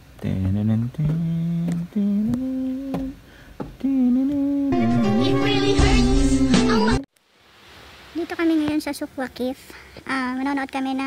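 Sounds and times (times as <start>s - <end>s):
person singing wordless tune: 0.3s - 7.1s.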